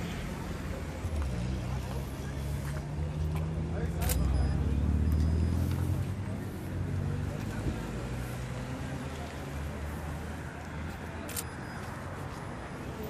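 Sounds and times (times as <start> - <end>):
bystanders talking: 0.0 - 13.0
road traffic rumble: 0.0 - 13.0.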